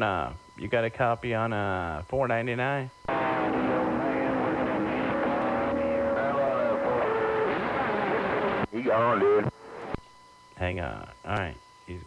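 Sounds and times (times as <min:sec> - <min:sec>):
radio static hiss: 0:00.0 - 0:12.0
garbled faint radio voices: 0:03.2 - 0:09.9.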